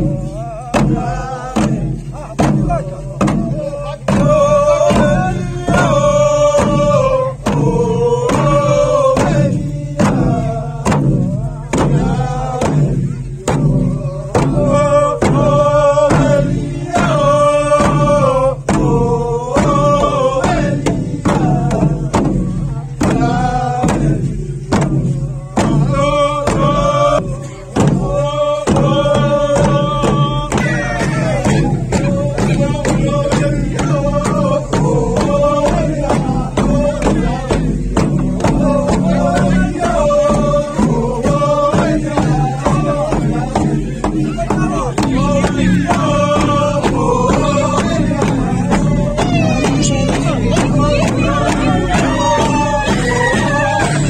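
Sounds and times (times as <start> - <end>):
men chanting a song: 0.0 - 54.0
wooden hand drums beating: 0.0 - 54.0.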